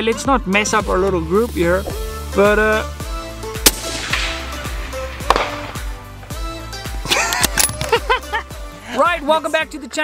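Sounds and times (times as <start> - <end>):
music with steady beat: 0.0 - 8.8
rifle shot: 3.6 - 6.1.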